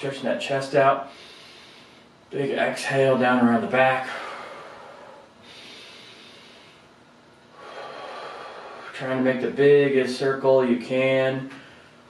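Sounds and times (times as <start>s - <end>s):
man breathing deeply: 1.0s - 2.2s, 4.0s - 9.0s, 11.5s - 12.0s.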